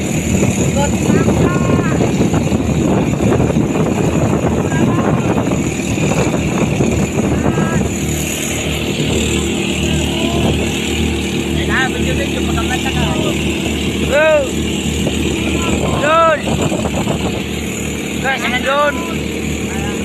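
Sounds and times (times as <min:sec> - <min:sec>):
boat engine running: 0:00.0 - 0:20.0
rush of wind and water: 0:00.0 - 0:20.0.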